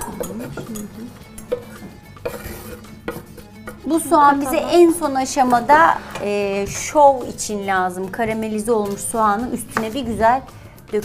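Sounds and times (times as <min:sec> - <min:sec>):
utensils clinking in metal saucepan: 0:00.0 - 0:11.0.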